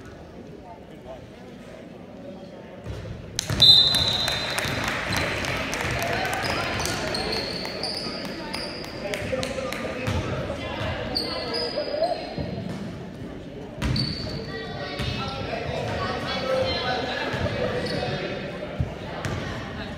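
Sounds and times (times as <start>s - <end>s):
murmur of voices: 0.0s - 19.9s
shoe squeaks: 11.1s - 12.4s, 13.8s - 14.5s.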